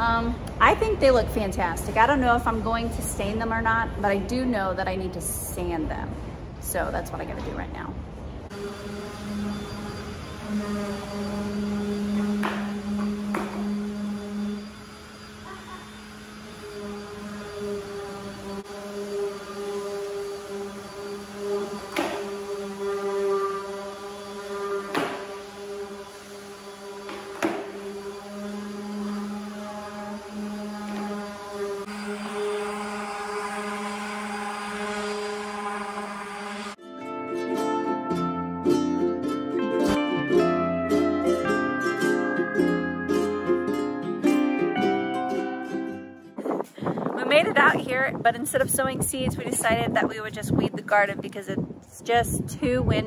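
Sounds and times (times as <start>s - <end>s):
orbital sander humming: 8.5s - 36.8s
plucked-string music: 36.8s - 46.4s.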